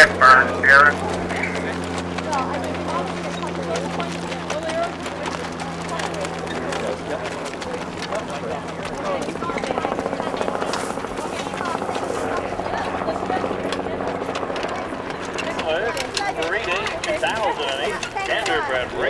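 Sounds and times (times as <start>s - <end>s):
indistinct background voices: 0.0s - 19.0s.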